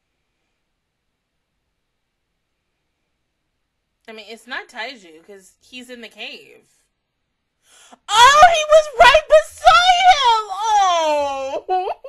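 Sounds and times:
high-pitched voice crying out: 8.0s - 12.0s.

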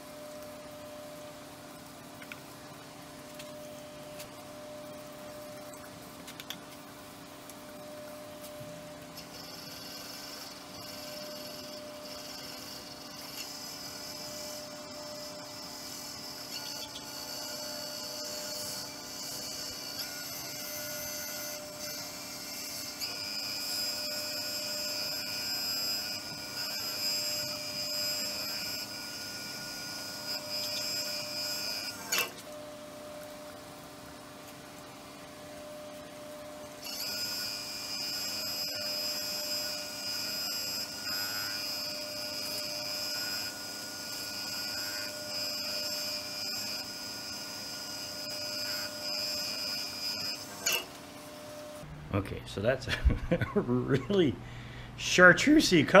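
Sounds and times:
lathe motor whine: 0.0s - 6.2s, 7.1s - 51.9s.

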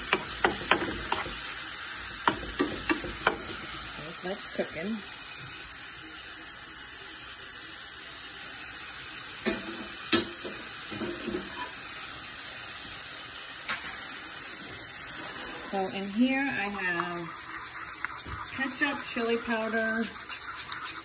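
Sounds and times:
meat and onion sizzling in pan: 0.0s - 21.0s
metal spoon clicking on pan: 0.1s - 1.3s, 2.3s - 3.5s.

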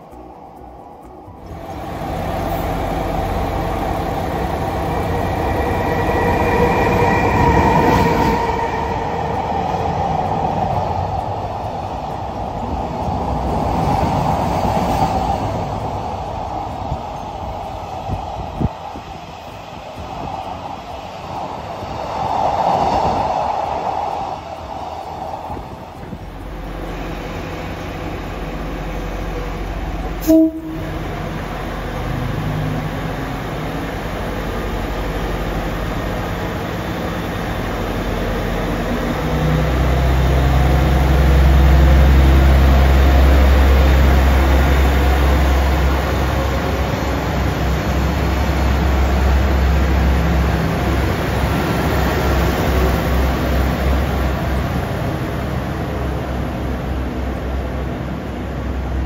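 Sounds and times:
high steady tone: 0.0s - 51.8s
clattering train wheels: 0.0s - 59.0s
freight train rolling past: 0.0s - 59.0s.

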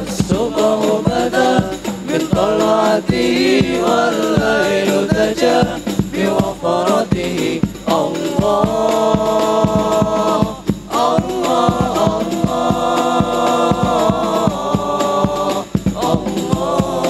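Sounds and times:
hand-struck frame drums: 0.0s - 17.0s
men singing together: 0.0s - 17.0s.

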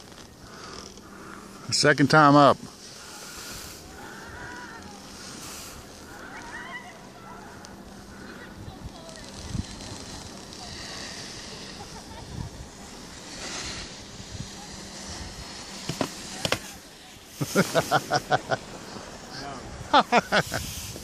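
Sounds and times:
faint background hiss: 0.0s - 21.0s
person laughing: 11.6s - 12.7s, 17.3s - 18.6s, 19.8s - 20.8s.

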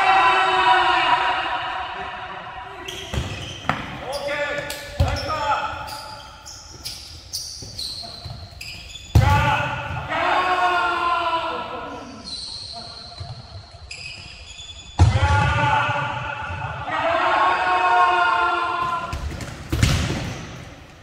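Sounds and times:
players calling out: 2.5s - 19.3s
sneakers squeaking on court: 2.7s - 10.1s, 12.0s - 15.0s.

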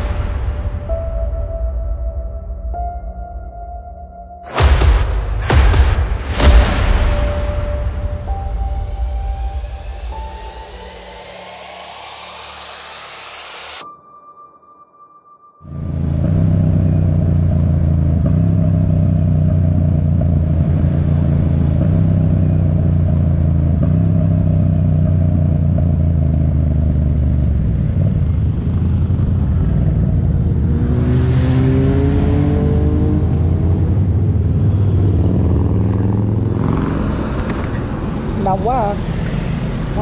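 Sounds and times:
motorcycle engine running: 15.8s - 31.0s.

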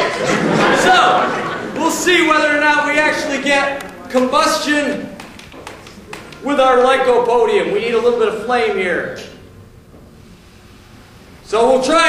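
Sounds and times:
man talking: 0.7s - 5.2s, 6.4s - 9.4s, 11.4s - 12.0s.

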